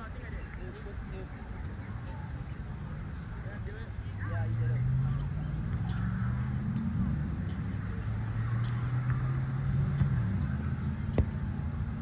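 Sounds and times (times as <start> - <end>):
faint distant voices: 0.0 - 12.0
low motor hum: 0.8 - 12.0.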